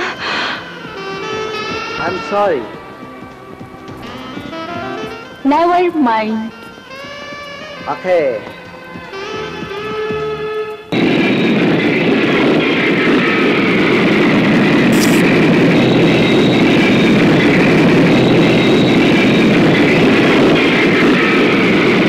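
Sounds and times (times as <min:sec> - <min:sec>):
jet engines at takeoff thrust: 0:10.9 - 0:22.0.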